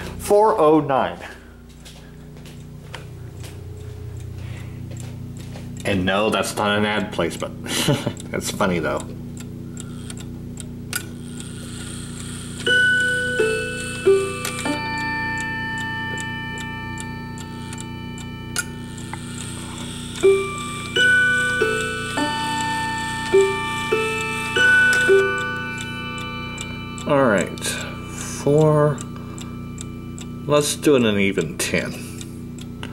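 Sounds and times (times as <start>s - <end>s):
clock ticking: 3.3s - 32.9s
clock chime: 11.1s - 32.9s.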